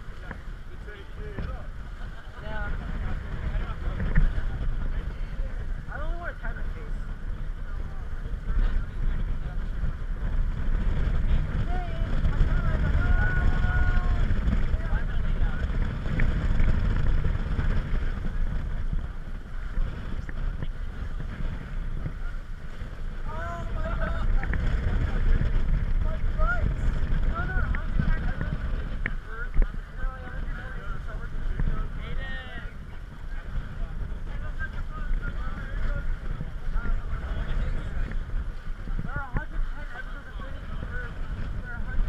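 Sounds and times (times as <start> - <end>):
faint voices: 0.0 - 42.0
water rushing along hull: 0.0 - 42.0
wind rumbling on microphone: 0.0 - 42.0.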